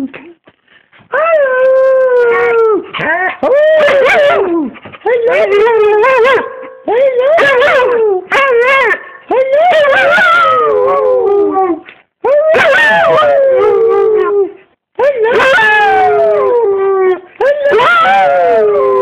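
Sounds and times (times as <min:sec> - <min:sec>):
dog howling: 0:01.1 - 0:14.6, 0:15.2 - 0:19.0.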